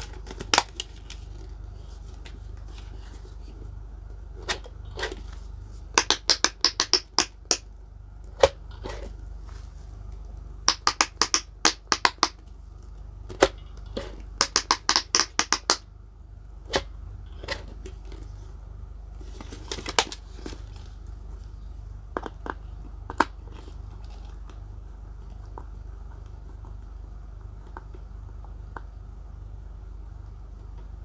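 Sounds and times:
fidget toy bubbles popping: 6.0s - 7.7s, 10.6s - 12.4s, 14.4s - 15.9s.

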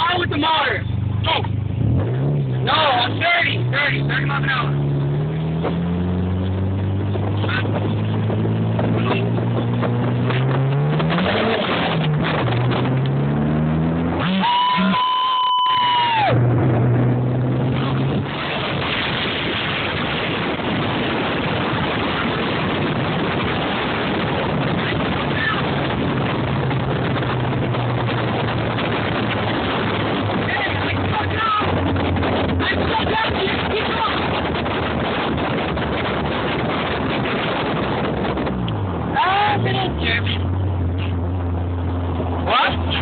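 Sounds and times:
wind and road noise: 0.0s - 43.0s
car engine revving hard: 0.4s - 43.0s.

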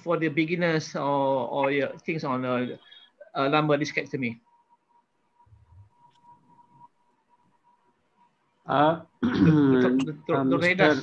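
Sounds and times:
thin steady whine: 9.7s - 11.0s.

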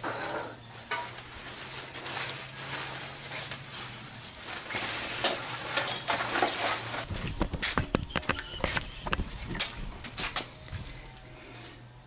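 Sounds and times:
fabric cover rustling and swishing: 1.2s - 10.9s.

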